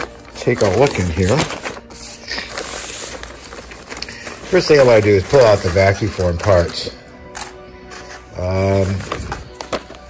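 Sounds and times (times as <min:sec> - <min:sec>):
plastic bag crinkling: 0:00.0 - 0:06.9.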